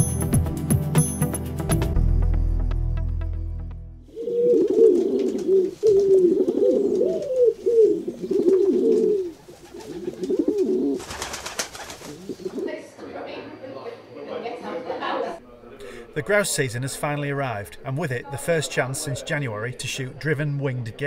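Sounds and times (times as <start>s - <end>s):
pigeons cooing: 4.1s - 13.0s.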